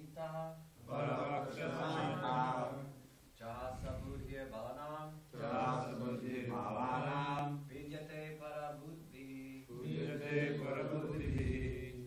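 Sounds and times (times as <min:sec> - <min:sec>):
voices chanting a verse: 0:00.0 - 0:12.0.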